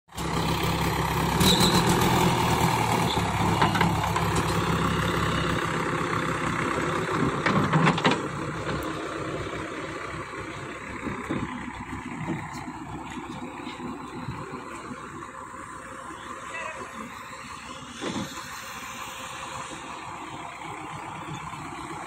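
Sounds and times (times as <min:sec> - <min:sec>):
diesel engine running: 0:00.1 - 0:22.0.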